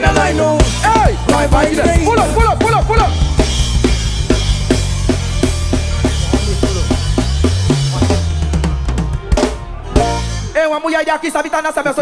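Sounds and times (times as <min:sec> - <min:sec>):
bass line: 0:00.0 - 0:10.6
drum kit beat: 0:00.0 - 0:10.6.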